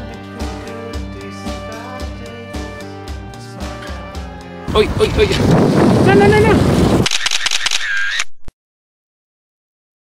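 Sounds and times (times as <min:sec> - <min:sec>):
camera shutter clicks: 0:07.0 - 0:08.4.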